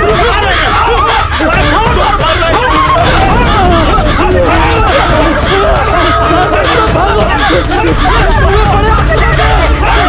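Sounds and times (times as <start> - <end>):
people screaming in panic: 0.0 - 10.0
steady low rumble: 1.3 - 10.0.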